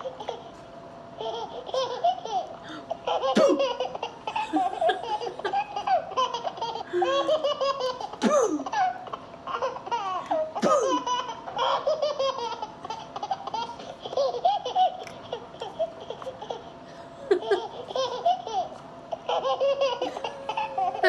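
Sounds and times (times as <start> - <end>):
baby laughing: 0.0 - 0.6, 1.2 - 21.0.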